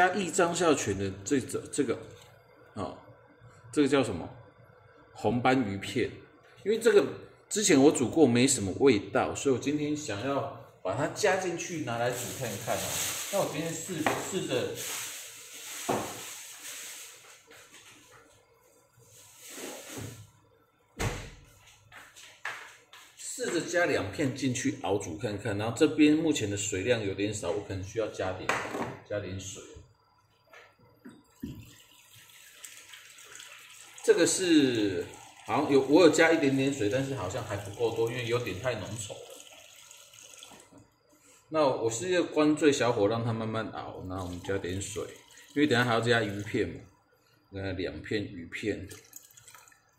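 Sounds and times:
sauce simmering hiss: 0:11.2 - 0:20.4, 0:31.4 - 0:41.5
gas burner hissing: 0:11.6 - 0:17.6, 0:19.0 - 0:20.4
loud thump: 0:21.0 - 0:21.4.

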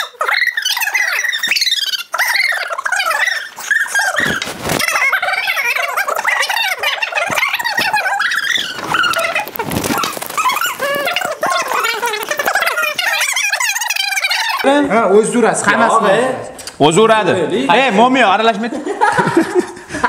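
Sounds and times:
person whining and yelping: 0:00.0 - 0:14.7.

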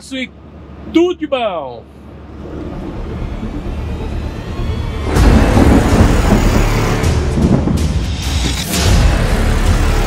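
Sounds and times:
truck engine and road rumble: 0:00.0 - 0:10.0.

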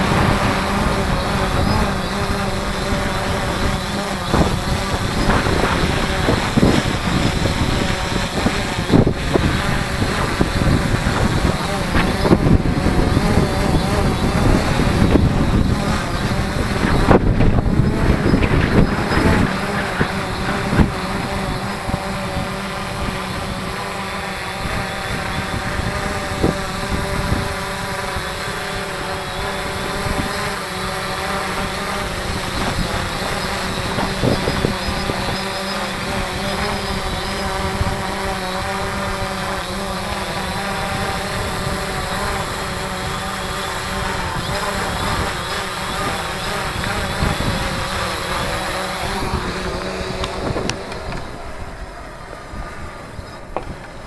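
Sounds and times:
drone propellers whining: 0:00.0 - 0:54.0
wind buffeting microphone: 0:00.0 - 0:54.0.

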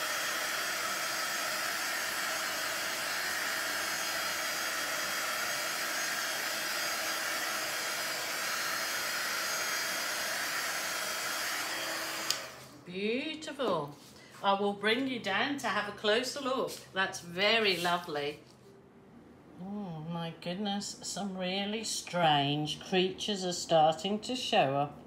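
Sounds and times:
heat gun blowing: 0:00.0 - 0:12.8.

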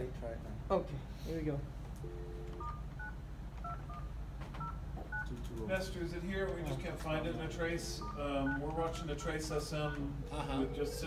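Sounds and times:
phone keypad tones: 0:02.0 - 0:05.3, 0:07.3 - 0:08.8.

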